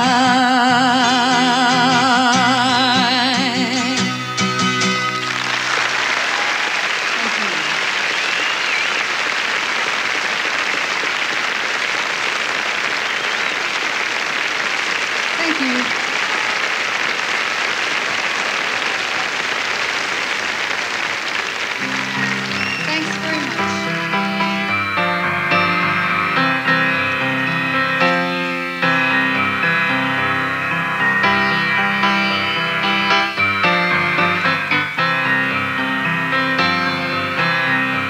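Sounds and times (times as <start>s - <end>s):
audience applauding: 3.9s - 38.0s.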